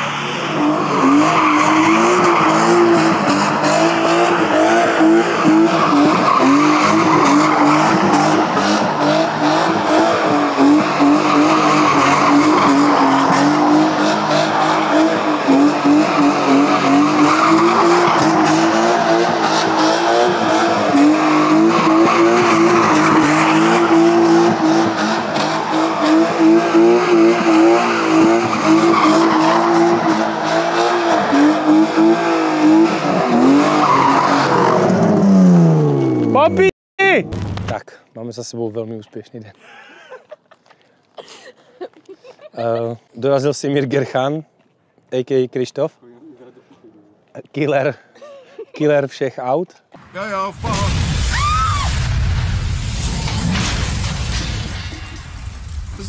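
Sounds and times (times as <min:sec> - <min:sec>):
car engine revving high: 0:00.0 - 0:36.4
tyres skidding on tarmac: 0:00.0 - 0:36.5.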